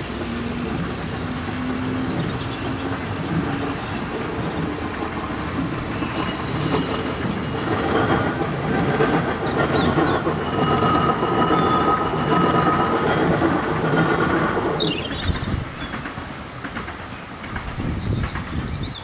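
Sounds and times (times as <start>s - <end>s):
train wheels rumbling on rails: 0.0s - 19.0s
wheel squeal: 2.1s - 16.0s.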